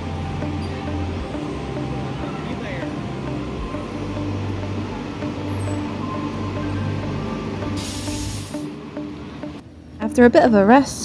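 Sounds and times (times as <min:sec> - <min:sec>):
bus engine humming: 0:00.0 - 0:10.8.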